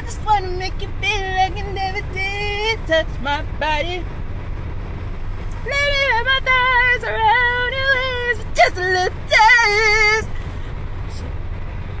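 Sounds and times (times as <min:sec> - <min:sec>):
woman singing: 0:00.0 - 0:04.0, 0:05.6 - 0:10.3
car engine and road noise: 0:00.0 - 0:12.0.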